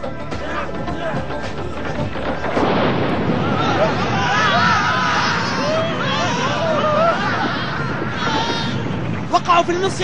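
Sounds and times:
men crying and screaming: 0:00.1 - 0:09.4.

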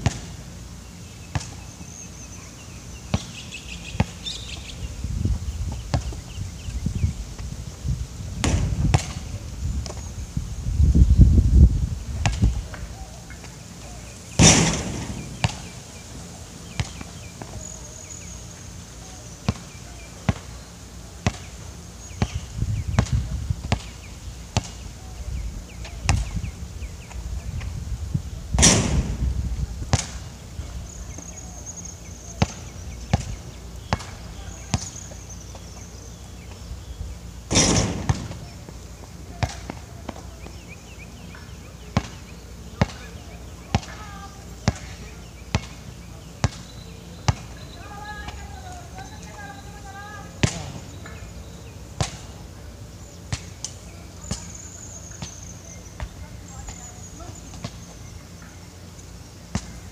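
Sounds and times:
basketball bouncing on hard court: 0:14.4 - 0:15.7, 0:37.5 - 0:38.5
loud bangs: 0:14.4 - 0:15.9, 0:28.6 - 0:29.3, 0:37.5 - 0:38.6.

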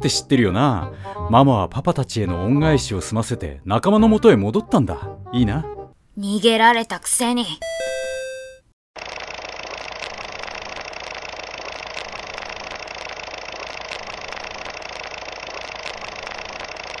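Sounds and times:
film projector whirring and clicking: 0:09.0 - 0:17.0.

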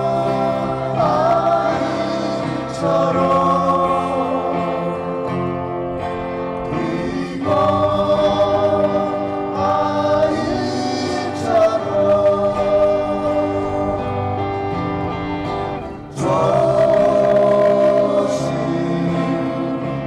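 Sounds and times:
women singing folk song: 0:00.0 - 0:05.4, 0:06.6 - 0:14.4, 0:16.2 - 0:20.0
strummed acoustic guitars: 0:00.0 - 0:20.0.

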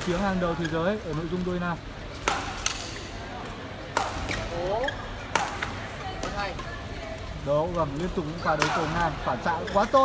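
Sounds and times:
hall background noise: 0:00.0 - 0:10.0
rackets striking shuttlecock: 0:02.2 - 0:06.7, 0:08.4 - 0:09.1.

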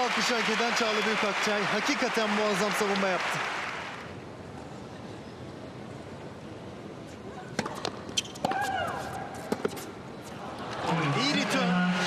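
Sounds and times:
hushed arena crowd: 0:00.0 - 0:06.1, 0:10.3 - 0:12.0
tennis ball bouncing: 0:07.5 - 0:09.9.

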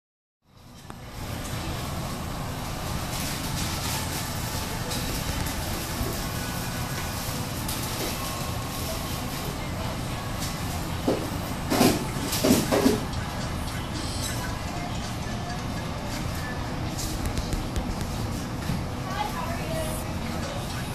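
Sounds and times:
low rumbling room noise: 0:00.5 - 0:20.9.

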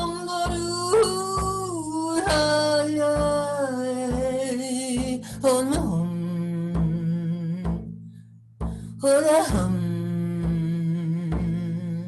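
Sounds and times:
low frame drum strokes: 0:00.0 - 0:12.0.

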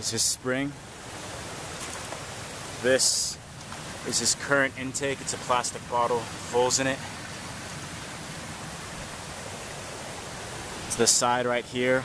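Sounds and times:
stream water flowing: 0:00.0 - 0:12.0.

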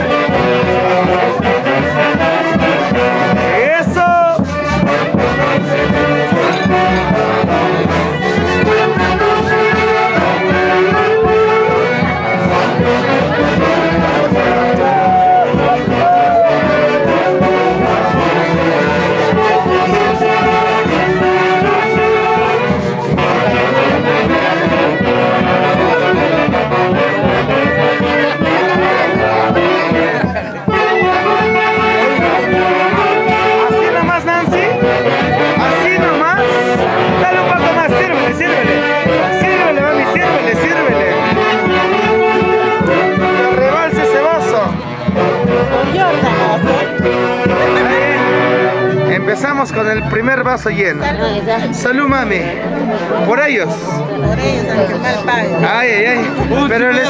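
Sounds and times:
brass-led dance music: 0:00.0 - 0:57.0.

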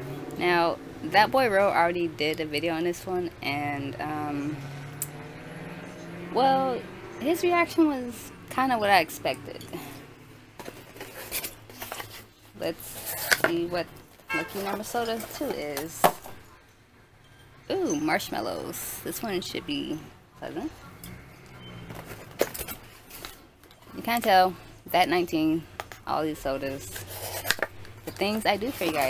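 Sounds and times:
cardboard scraping and rustling: 0:10.6 - 0:13.5, 0:26.9 - 0:29.0.

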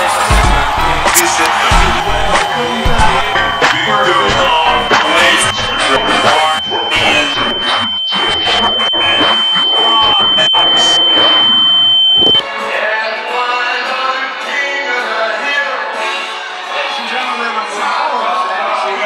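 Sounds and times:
voices: 0:00.0 - 0:12.4
music: 0:00.0 - 0:19.0
high-pitched electronic tone: 0:00.8 - 0:12.4.

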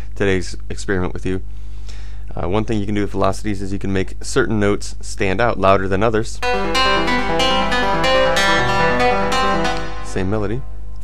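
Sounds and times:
quick repeating synth melody: 0:06.4 - 0:10.8.

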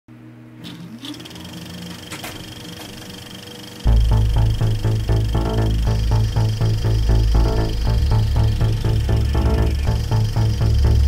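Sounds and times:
low synth drone: 0:03.0 - 0:11.0
rising synth sweep: 0:03.8 - 0:11.0
loud beat with heavy bass: 0:03.9 - 0:11.0.

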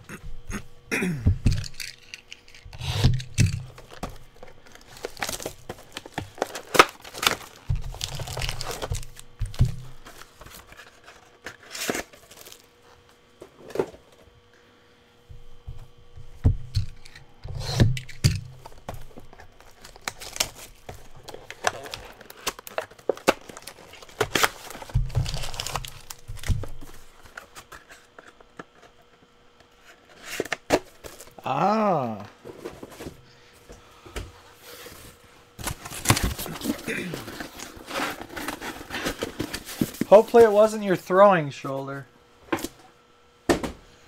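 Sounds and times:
foil packs tearing and crinkling: 0:01.5 - 0:12.7, 0:16.8 - 0:28.1, 0:30.4 - 0:31.4, 0:35.6 - 0:40.7.

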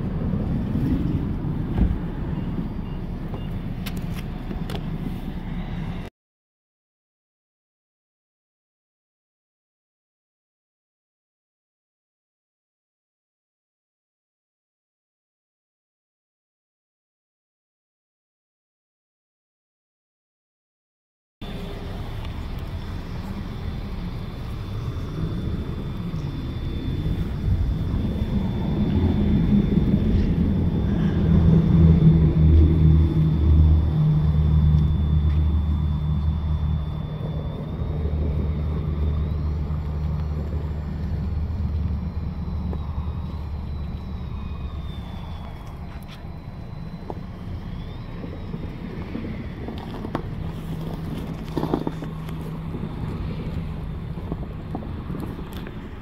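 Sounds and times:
vehicle engine rumbling: 0:00.0 - 0:06.1, 0:21.4 - 0:56.0.

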